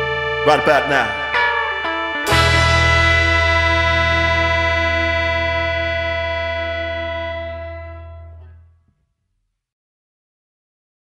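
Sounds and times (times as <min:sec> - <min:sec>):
band chord ringing out: 0:00.0 - 0:08.8.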